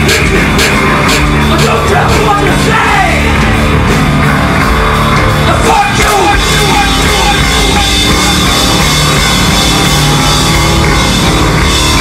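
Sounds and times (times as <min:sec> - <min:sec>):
blues-rock band playing: 0:00.0 - 0:12.0.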